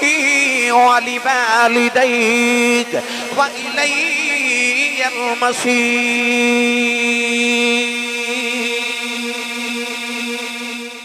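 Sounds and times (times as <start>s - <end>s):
man chanting through a microphone: 0.0s - 10.8s.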